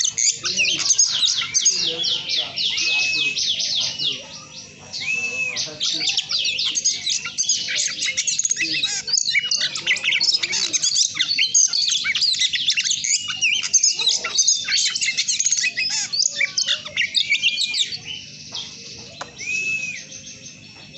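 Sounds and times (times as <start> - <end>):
arched bird whistle: 0.0 - 18.3, 19.2 - 20.5
bird song with whistles and trills: 0.0 - 20.9.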